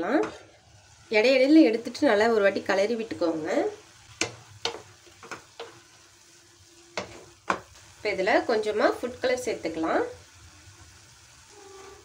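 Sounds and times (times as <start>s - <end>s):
carrots sizzling in a frying pan: 0.0s - 12.0s.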